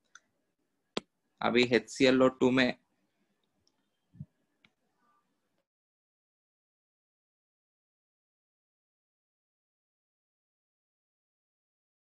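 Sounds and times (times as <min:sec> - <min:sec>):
man speaking: 0:01.4 - 0:02.8.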